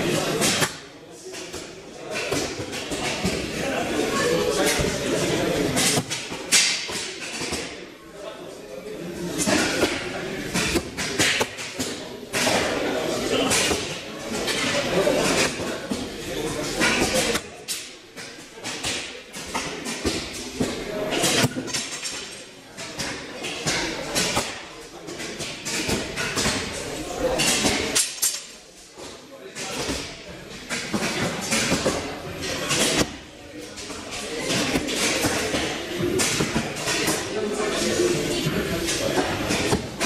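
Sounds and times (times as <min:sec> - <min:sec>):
indistinct voices in echoing hall: 0:00.0 - 0:40.0.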